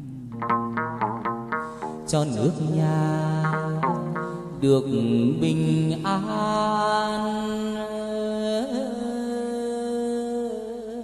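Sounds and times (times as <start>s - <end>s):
plucked lute: 0.0s - 8.1s
man singing long vowel notes: 0.0s - 11.0s.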